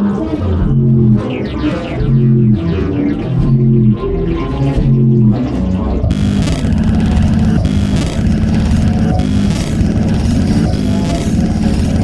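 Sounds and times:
drums: 0.5 - 12.0
heavy bass notes: 1.9 - 12.0
distorted noise: 6.0 - 12.0.

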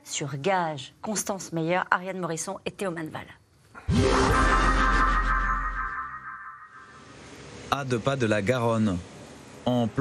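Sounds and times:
electronic music sting: 3.9 - 7.0.

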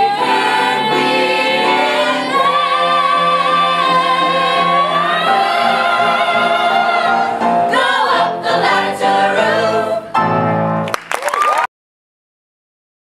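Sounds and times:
mixed-voice ensemble singing: 0.0 - 10.3
piano accompaniment: 0.0 - 11.1.

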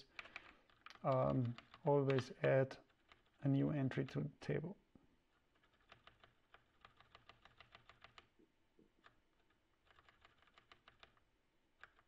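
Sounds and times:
rapid computer keyboard typing: 0.1 - 3.4, 5.5 - 8.3, 9.0 - 11.2, 11.8 - 12.0.

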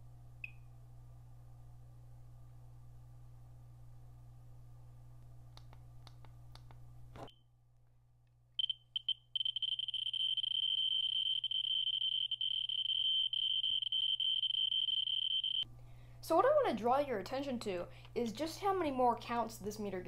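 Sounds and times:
high-pitched survey meter tone: 8.6 - 15.7.

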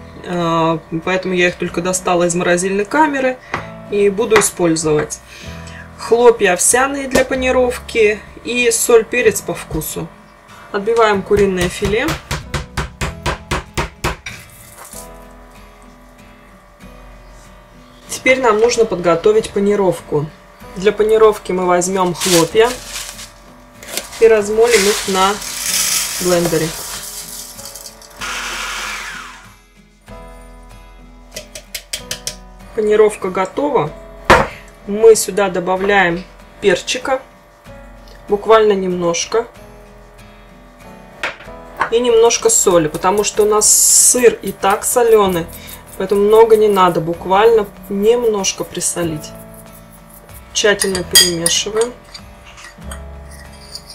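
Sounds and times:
soft background music: 0.0 - 53.9
meat tenderizer pounding meat: 11.2 - 14.3
pepper mill knocking on wooden board: 11.4 - 14.3
pepper mill grinding: 14.4 - 15.3, 22.0 - 29.4, 42.6 - 53.9.

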